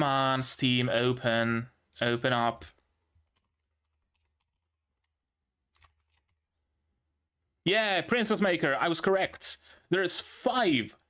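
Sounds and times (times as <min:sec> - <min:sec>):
computer keyboard typing: 0:03.3 - 0:06.4.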